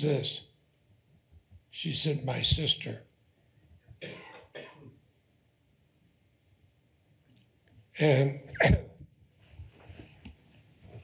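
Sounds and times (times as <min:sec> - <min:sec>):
person clearing throat: 0:04.0 - 0:05.0, 0:08.5 - 0:09.0.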